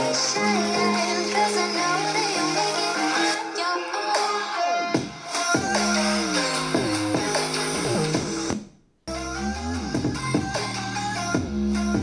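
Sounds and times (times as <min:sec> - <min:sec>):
electronic dance music from speaker: 0:00.0 - 0:12.0.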